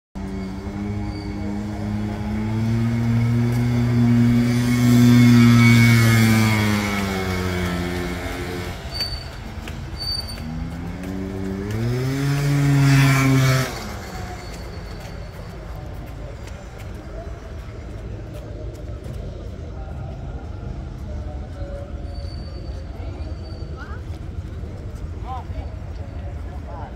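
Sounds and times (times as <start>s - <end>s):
motorcycles riding past: 0.2s - 18.2s.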